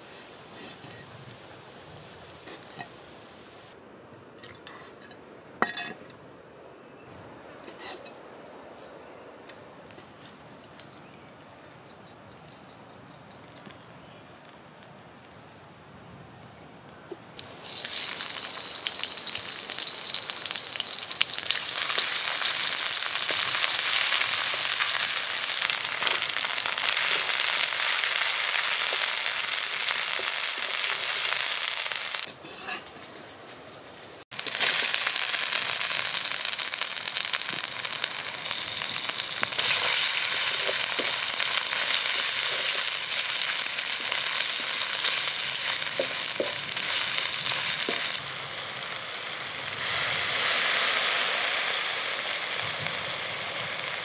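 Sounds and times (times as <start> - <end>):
food sizzling in hot oil: 17.4 - 32.7, 34.3 - 54.0.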